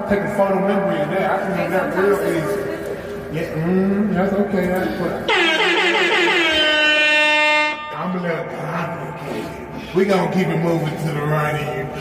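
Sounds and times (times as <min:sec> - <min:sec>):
air horn blast: 0:05.3 - 0:08.2.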